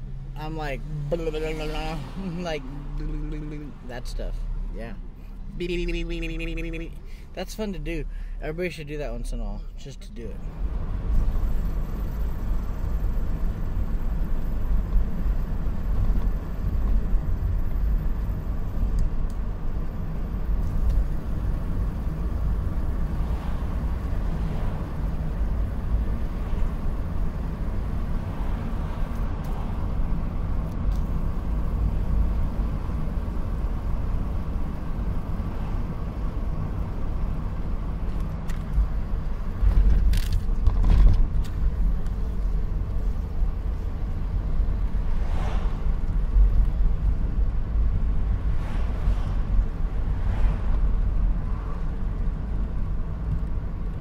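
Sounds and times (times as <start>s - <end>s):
car cabin road rumble: 0.0s - 54.0s.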